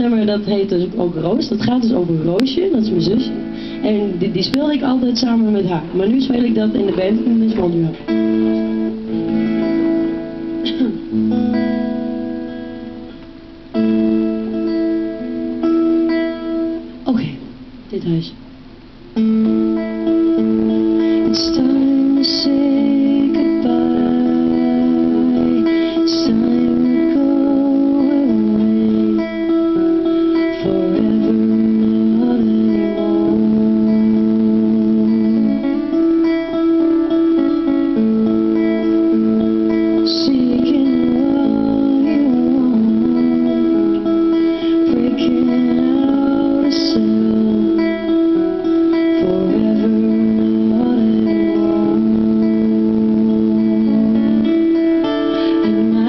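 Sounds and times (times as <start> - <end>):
acoustic guitars strummed: 0.0 - 56.0
woman singing a slow ballad: 21.2 - 35.9, 39.8 - 56.0.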